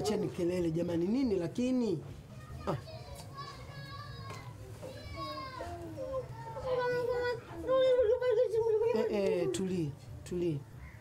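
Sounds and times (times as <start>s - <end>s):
children playing and calling: 2.0s - 11.0s.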